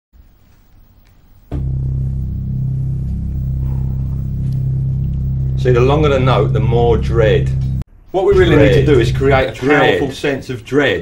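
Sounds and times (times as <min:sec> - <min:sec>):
deep electronic keyboard note: 0:01.5 - 0:09.6.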